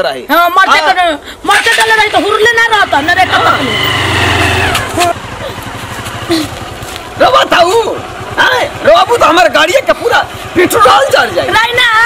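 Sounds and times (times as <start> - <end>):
motorcycle engine rumbling: 0.3 - 12.0.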